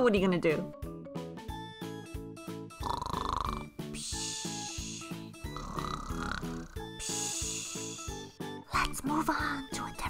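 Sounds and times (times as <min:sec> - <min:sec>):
light background music: 0:00.0 - 0:10.0
cartoon buzzing snore: 0:02.7 - 0:08.3
hissing breath out: 0:04.0 - 0:08.3.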